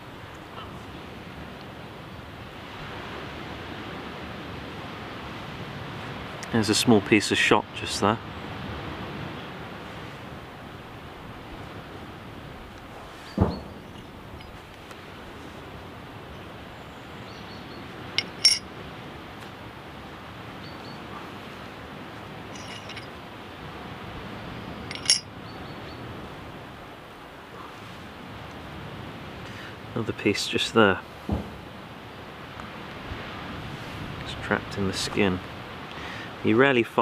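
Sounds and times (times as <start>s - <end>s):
outdoor background hiss: 0.0s - 37.0s
handling clicks and clinks: 18.2s - 18.7s, 22.5s - 23.1s, 24.9s - 25.3s.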